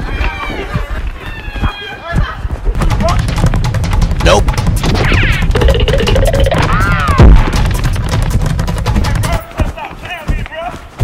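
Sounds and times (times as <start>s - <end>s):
people shrieking and yelling: 0.0s - 2.4s, 6.6s - 7.4s
quick footfalls: 0.0s - 11.0s
knocks: 2.8s - 9.5s.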